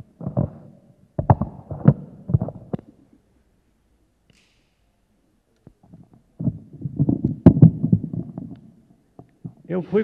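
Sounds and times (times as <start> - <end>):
microphone handling noise: 0.0 - 3.0, 5.7 - 9.7.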